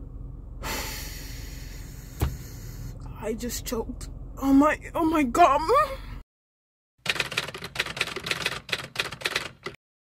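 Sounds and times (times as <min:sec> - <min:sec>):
typewriter keys clacking: 0:07.1 - 0:09.8.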